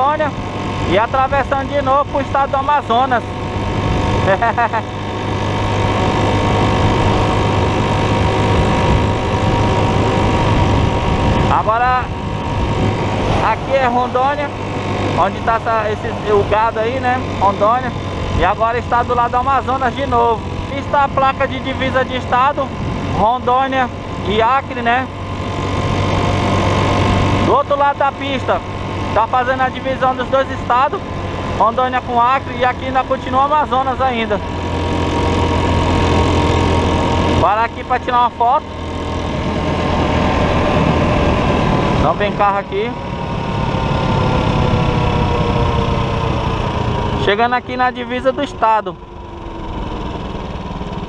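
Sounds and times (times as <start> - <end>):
motorcycle engine hum: 0.0 - 51.0
wind and road noise: 0.0 - 51.0.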